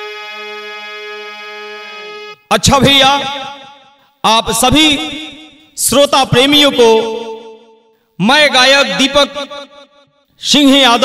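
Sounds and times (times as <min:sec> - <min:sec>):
harmonium holding a reedy note: 0:00.0 - 0:03.9.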